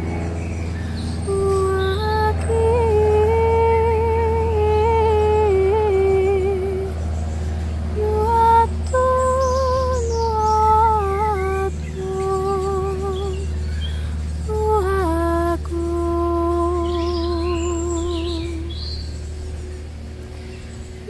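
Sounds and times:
birds chirping faintly: 0:00.0 - 0:21.0
steady low hum: 0:00.0 - 0:21.0
woman humming a melody: 0:01.2 - 0:19.6.

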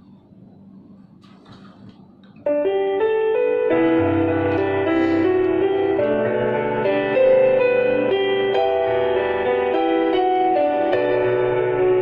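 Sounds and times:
keyboard playing piano chords: 0:02.4 - 0:12.0.

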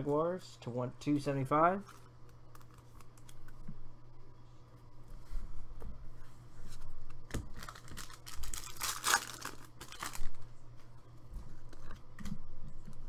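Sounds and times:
foil wrapper crinkling: 0:07.5 - 0:10.5.

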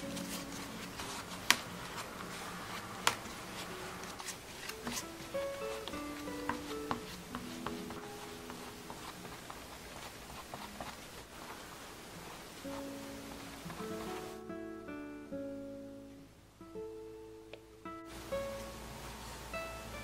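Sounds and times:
soft melody of single notes: 0:00.0 - 0:09.5, 0:12.6 - 0:20.0.

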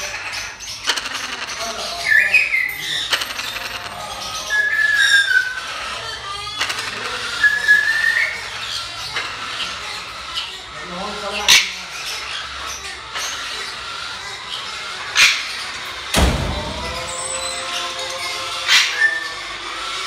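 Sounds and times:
parrots whistling: 0:00.0 - 0:20.0.

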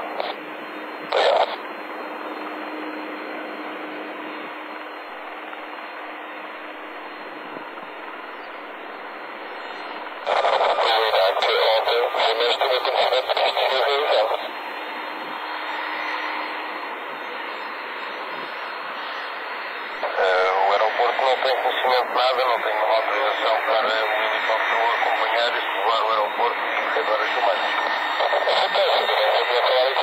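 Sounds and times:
radio voice transmissions: 0:00.0 - 0:02.6, 0:04.2 - 0:30.0
radio hiss: 0:00.0 - 0:30.0.

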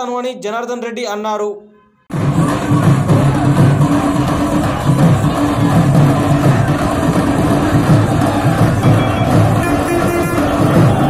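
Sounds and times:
procession drums beating: 0:02.1 - 0:11.0
traffic noise: 0:05.3 - 0:11.0
short high-pitched horn tone: 0:08.8 - 0:11.0.

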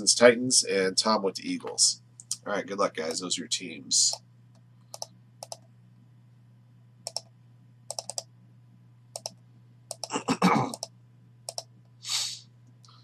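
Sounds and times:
faint electrical hum: 0:00.0 - 0:13.0
mouse and keyboard clicks: 0:04.9 - 0:05.6, 0:07.1 - 0:07.3, 0:07.9 - 0:08.3, 0:09.2 - 0:10.1, 0:11.5 - 0:11.7.

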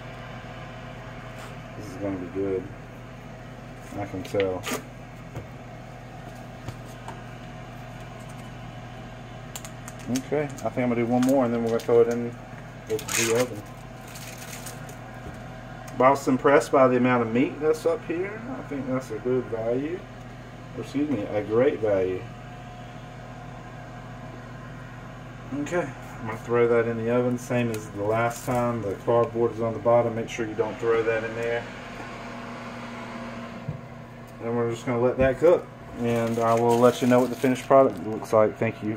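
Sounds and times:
kitchen appliance electrical hum: 0:00.0 - 0:38.9.

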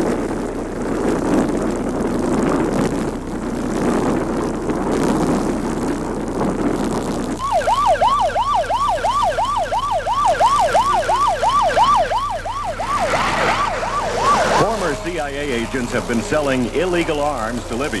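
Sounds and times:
siren yelping: 0:07.4 - 0:18.0
rushing roar: 0:10.4 - 0:18.0.

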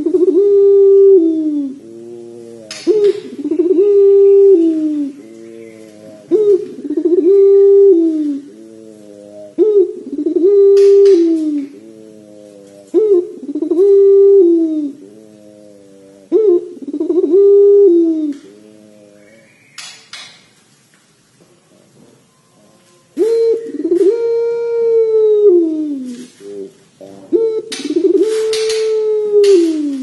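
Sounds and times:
dove cooing: 0:00.0 - 0:19.6, 0:21.6 - 0:30.0.

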